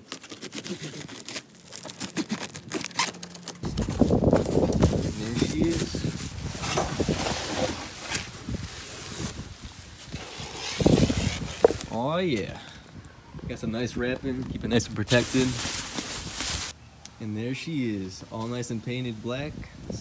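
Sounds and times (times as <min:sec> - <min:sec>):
tape and cardboard scraping: 0:00.0 - 0:12.0
cardboard and bubble wrap rustling: 0:00.0 - 0:12.1, 0:15.1 - 0:16.8.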